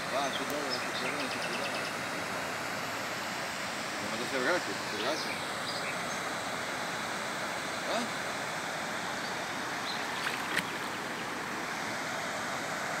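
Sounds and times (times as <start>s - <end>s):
floodwater rushing: 0.0s - 13.0s.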